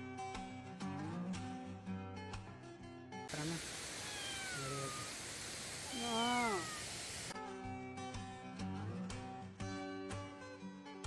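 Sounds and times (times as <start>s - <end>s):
cat meowing: 3.3s - 7.1s
steady hiss: 3.3s - 7.4s.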